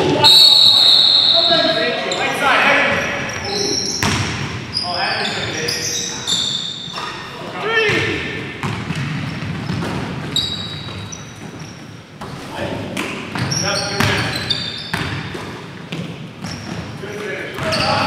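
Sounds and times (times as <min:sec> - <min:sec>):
players calling out: 0:00.0 - 0:06.6
sneakers squeaking on court: 0:01.0 - 0:07.3, 0:08.6 - 0:18.0
basketball bouncing: 0:02.9 - 0:04.5, 0:07.9 - 0:12.3, 0:14.9 - 0:16.9.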